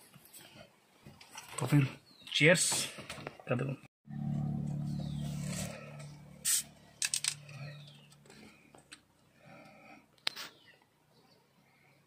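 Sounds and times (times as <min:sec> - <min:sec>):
low steady hum: 0:04.1 - 0:09.7
soda bottle hiss: 0:06.4 - 0:06.6.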